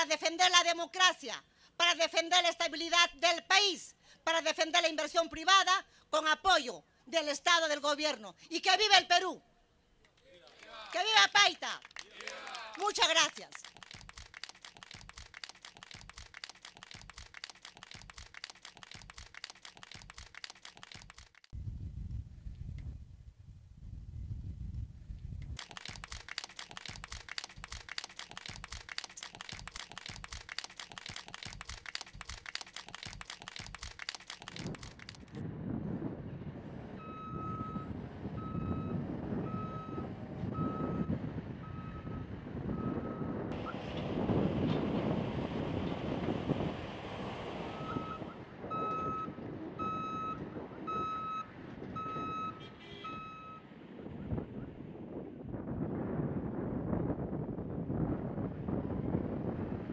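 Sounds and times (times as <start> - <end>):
applause: 10.3 - 21.5, 25.6 - 35.4
heavy vehicle engine running: 36.2 - 52.2
reversing alarm beeping: 37.0 - 43.8, 47.7 - 53.7.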